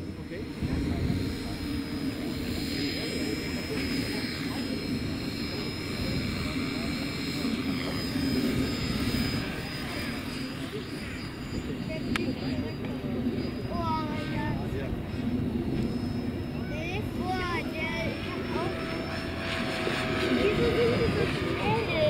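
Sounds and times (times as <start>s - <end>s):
high motor whine: 0.0s - 22.0s
model helicopter rotor buzz: 0.0s - 22.0s.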